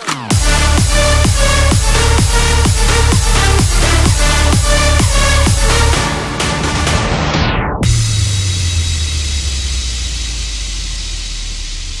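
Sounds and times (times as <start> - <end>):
deep bass drone: 0.3 - 12.0.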